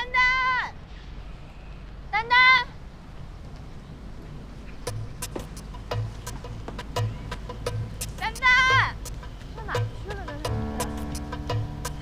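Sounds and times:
woman shouting a name: 0:00.0 - 0:00.8, 0:02.1 - 0:02.8, 0:08.2 - 0:09.0.

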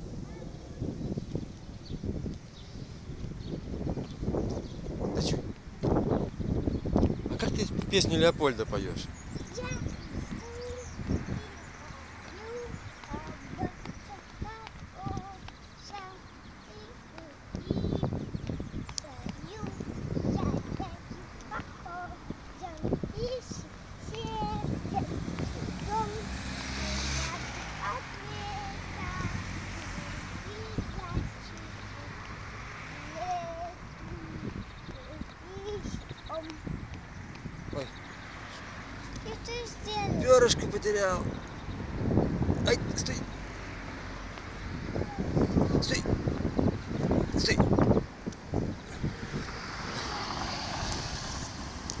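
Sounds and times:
wind rumbling on microphone: 0:00.0 - 0:52.0
child making high vocal sounds: 0:09.5 - 0:18.2, 0:19.0 - 0:36.9, 0:39.1 - 0:40.2, 0:44.9 - 0:45.7.

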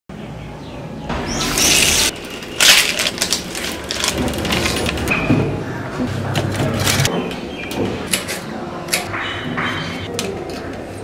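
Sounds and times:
plastic sachet ripping: 0:01.5 - 0:05.1
plastic crinkling: 0:01.6 - 0:05.1.

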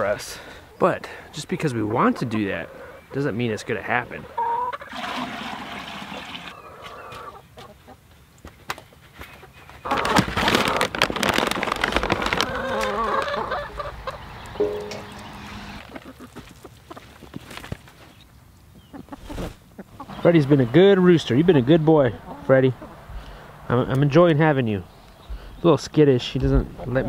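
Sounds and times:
hens clucking: 0:00.0 - 0:08.1, 0:12.0 - 0:17.4, 0:18.8 - 0:27.0.

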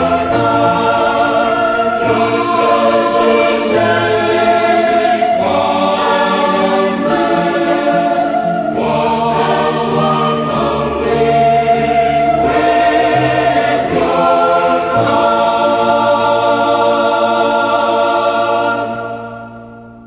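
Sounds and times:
men and women singing a hymn: 0:00.0 - 0:19.8.

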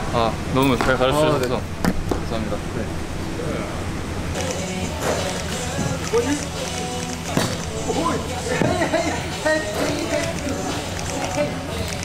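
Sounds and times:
people's voices: 0:00.2 - 0:12.0
background music: 0:04.3 - 0:12.0.

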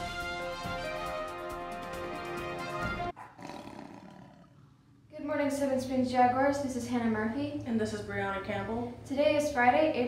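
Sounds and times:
music: 0:00.0 - 0:03.1
big cat roar: 0:03.4 - 0:04.8.

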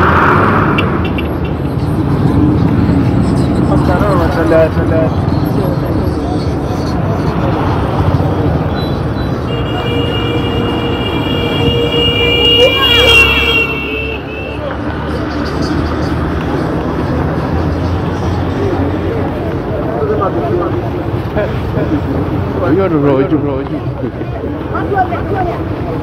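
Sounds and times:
motorbike engines: 0:00.0 - 0:26.0
people's voices: 0:00.0 - 0:26.0
road traffic: 0:00.0 - 0:26.0.

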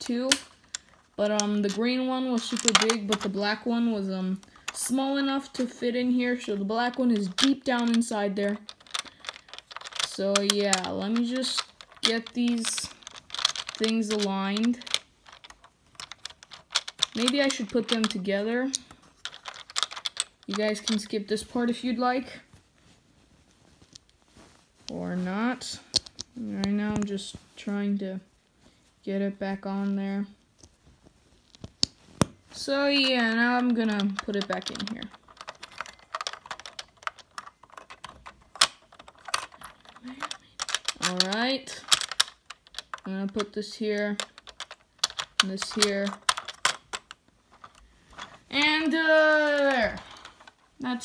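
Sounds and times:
plastic lego pieces clicking: 0:00.0 - 0:21.2, 0:31.6 - 0:51.0
plastic bricks snapping: 0:00.3 - 0:03.6, 0:06.7 - 0:21.0, 0:33.0 - 0:50.6.

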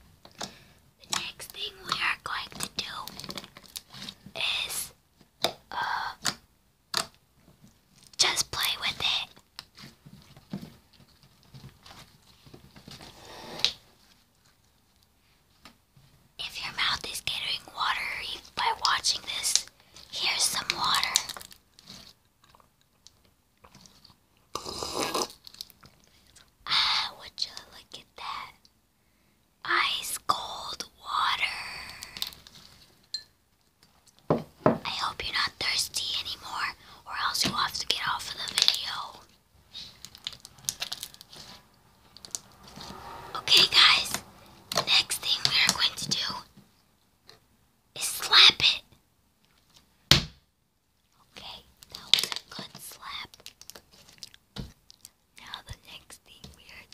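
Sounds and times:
close whispering: 0:01.0 - 0:03.3, 0:04.3 - 0:05.0, 0:05.7 - 0:06.2, 0:08.2 - 0:09.4, 0:16.4 - 0:21.4, 0:26.6 - 0:28.6, 0:29.6 - 0:32.4, 0:34.8 - 0:40.0, 0:42.9 - 0:46.5, 0:48.0 - 0:48.9, 0:51.2 - 0:53.3, 0:55.4 - 0:56.9.

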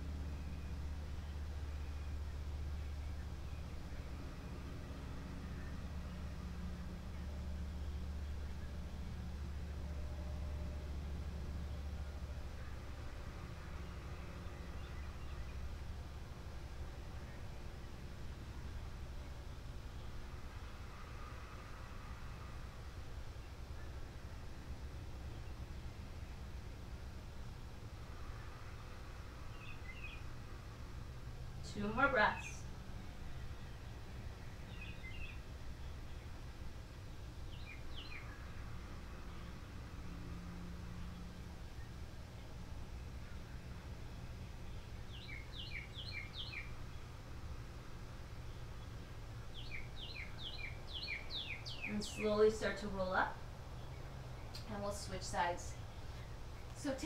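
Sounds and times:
steady low hum: 0:00.0 - 0:57.0
steady low rumble: 0:00.0 - 0:57.0.

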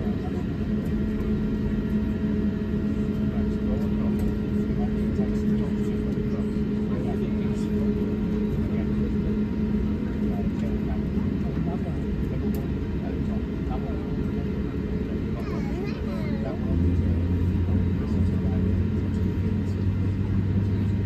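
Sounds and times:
aircraft cabin hum: 0:00.0 - 0:21.0
passenger chatter: 0:00.0 - 0:21.0.

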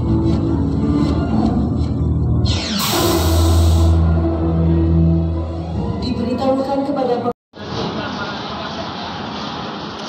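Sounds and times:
film soundtrack music: 0:00.0 - 0:06.6.

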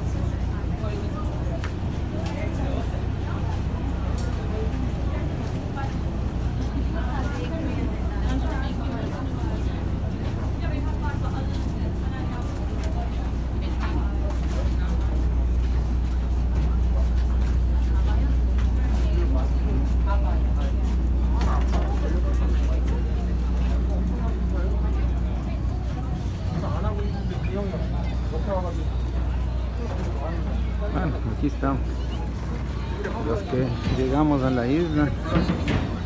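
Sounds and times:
crowd talking: 0:00.0 - 0:36.0
ferry engine drone: 0:00.0 - 0:36.0.

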